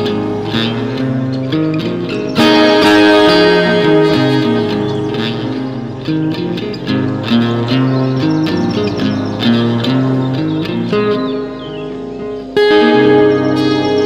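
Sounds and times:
plucked guitar melody: 0:00.0 - 0:14.0
steady held tones: 0:00.0 - 0:14.0.

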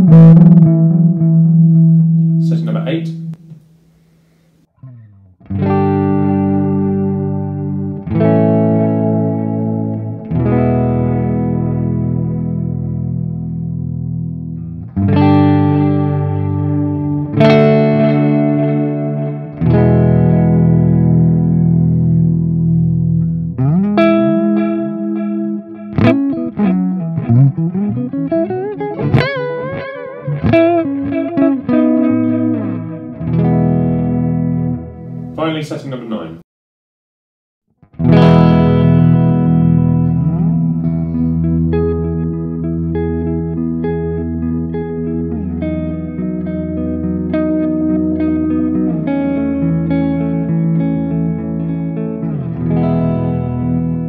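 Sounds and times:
electric guitar chords ringing: 0:00.0 - 0:36.3, 0:37.8 - 0:54.0
electric guitar lead line: 0:00.0 - 0:36.3, 0:37.8 - 0:54.0.

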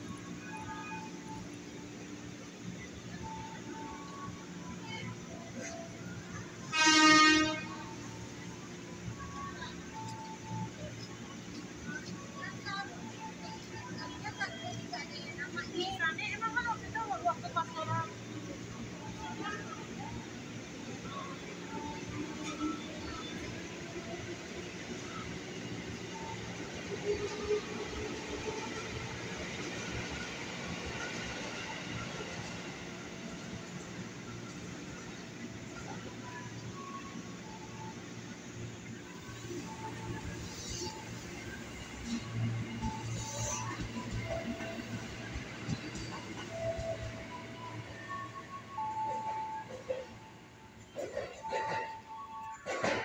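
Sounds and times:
stationary electric train humming: 0:00.0 - 0:53.0
train horn toot: 0:06.6 - 0:08.2.

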